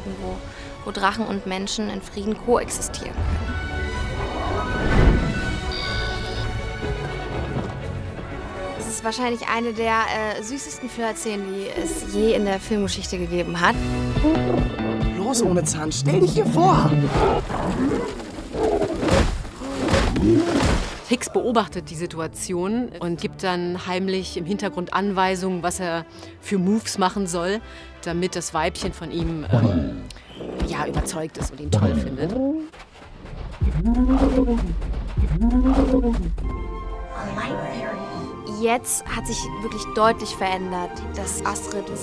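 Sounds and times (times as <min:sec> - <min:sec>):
dragon calls: 0:05.6 - 0:06.6
low rumble: 0:33.4 - 0:37.2.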